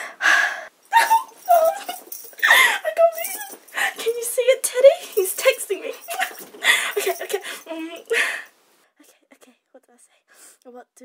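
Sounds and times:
woman squealing and giggling: 0:00.9 - 0:03.6, 0:06.0 - 0:07.9.

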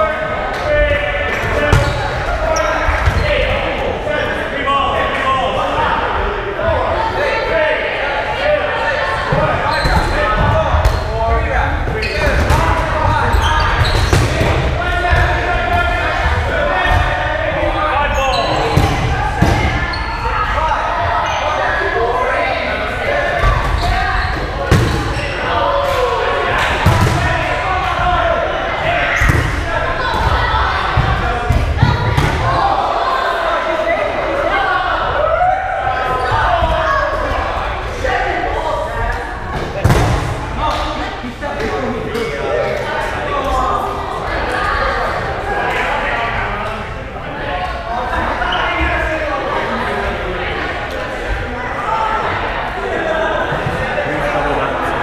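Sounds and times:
players shouting: 0:00.0 - 0:46.6.

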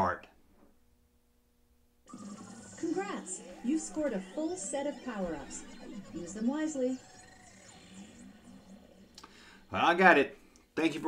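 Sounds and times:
faint electronic jingle: 0:02.1 - 0:11.0.

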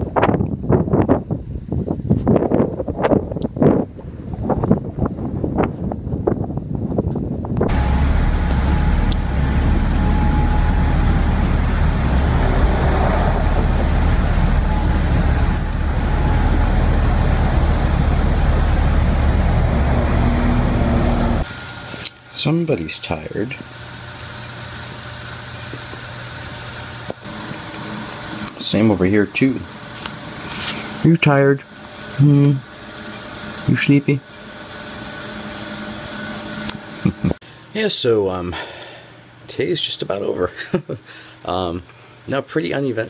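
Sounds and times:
wind buffeting microphone: 0:00.0 - 0:21.4
car driving with window open: 0:07.6 - 0:21.5.

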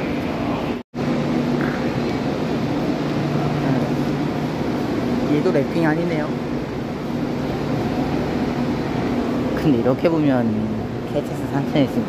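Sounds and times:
station concourse hum: 0:00.0 - 0:12.0.

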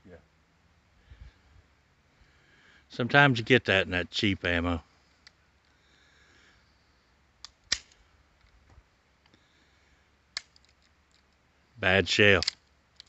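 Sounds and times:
pistol metallic clicks: 0:07.4 - 0:08.6, 0:10.3 - 0:11.4, 0:12.3 - 0:13.0.

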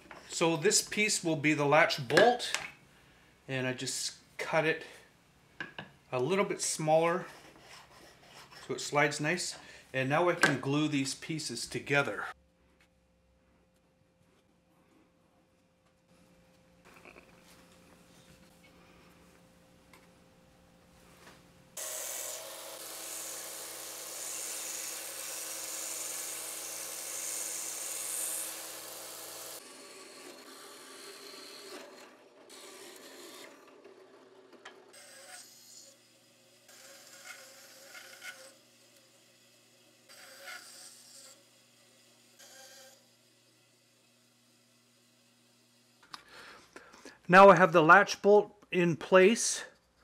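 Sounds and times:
drill press boring wood: 0:21.8 - 0:46.1
power tool running: 0:21.8 - 0:46.6.

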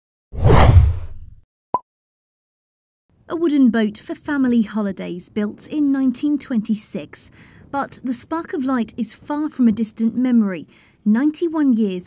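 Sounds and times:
whoosh with deep rumble: 0:00.4 - 0:01.4.

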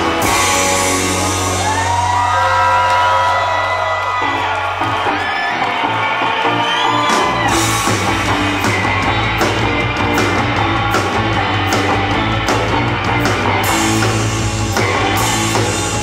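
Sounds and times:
electric guitars bending pitch: 0:00.0 - 0:02.5, 0:05.1 - 0:16.0.

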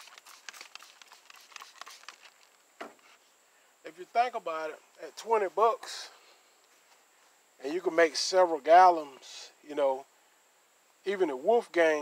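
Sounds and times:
spray bottle spritzing: 0:00.0 - 0:02.6.

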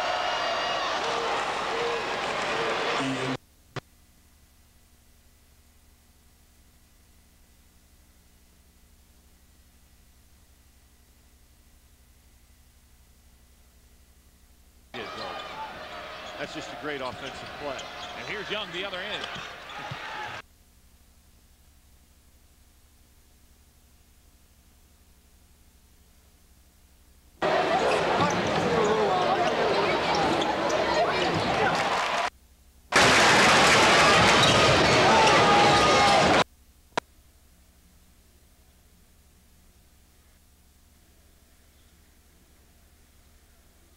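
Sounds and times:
arena crowd noise: 0:00.0 - 0:03.4, 0:15.0 - 0:20.4, 0:27.4 - 0:32.3, 0:32.9 - 0:36.4
basketball bouncing on court: 0:19.2 - 0:20.4, 0:34.2 - 0:35.4.

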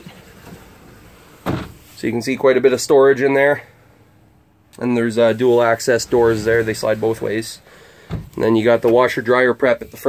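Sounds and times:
sliding door rolling rumble: 0:05.1 - 0:09.3.

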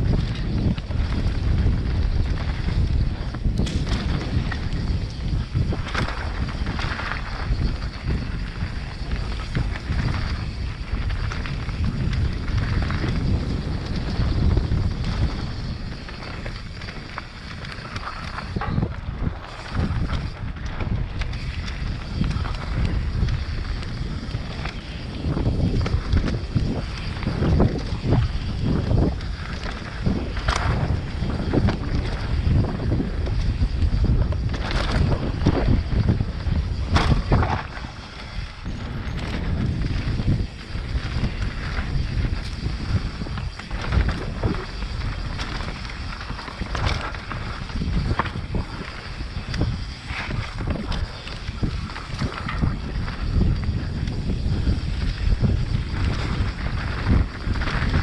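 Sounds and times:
bike knocks and rattles: 0:00.0 - 0:58.0
wind on microphone: 0:00.0 - 0:58.0.

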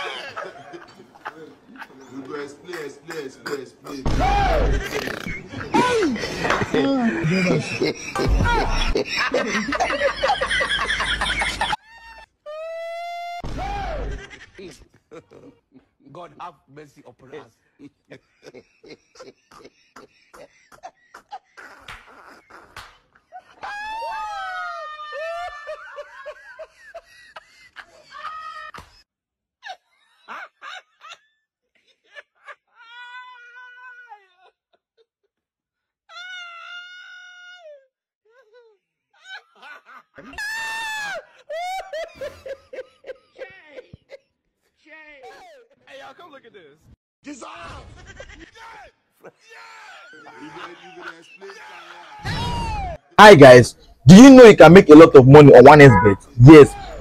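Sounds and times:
man cackling laugh: 0:04.6 - 0:11.8, 0:41.5 - 0:44.2.

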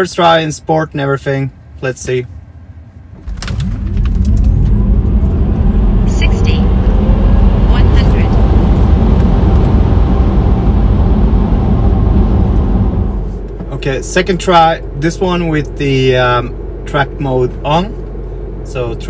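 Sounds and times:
road and tyre rumble: 0:00.0 - 0:19.0
faint rising electric motor whine: 0:02.6 - 0:19.0
wind noise: 0:03.1 - 0:13.4.

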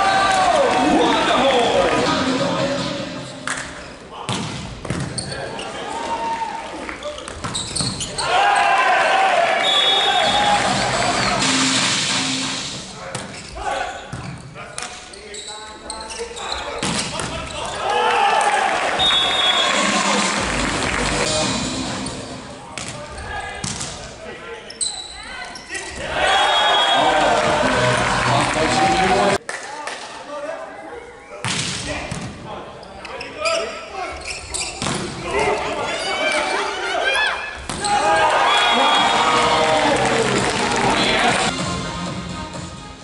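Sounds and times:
crowd and players shouting: 0:00.0 - 0:03.2, 0:08.0 - 0:11.6, 0:17.5 - 0:22.6, 0:25.4 - 0:29.4, 0:35.2 - 0:41.5
shoes squeaking on floor: 0:05.0 - 0:06.0, 0:07.0 - 0:08.3, 0:13.2 - 0:17.8, 0:24.5 - 0:26.0, 0:32.7 - 0:36.8
short whistle: 0:19.0 - 0:19.8.

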